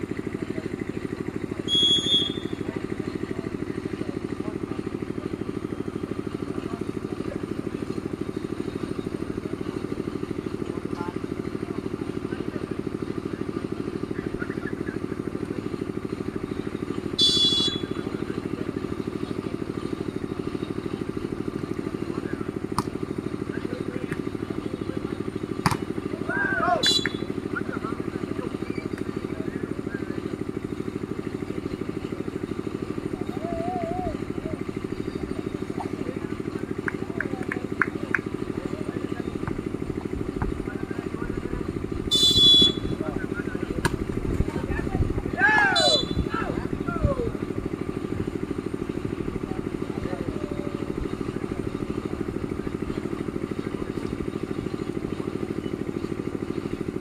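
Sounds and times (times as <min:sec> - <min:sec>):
low engine-like drone: 0:00.0 - 0:57.0
referee's whistle: 0:01.6 - 0:02.6, 0:17.2 - 0:18.0, 0:26.8 - 0:27.3, 0:42.1 - 0:43.0, 0:45.6 - 0:46.3
volleyball being struck: 0:22.6 - 0:23.0, 0:25.6 - 0:26.0, 0:43.8 - 0:44.1.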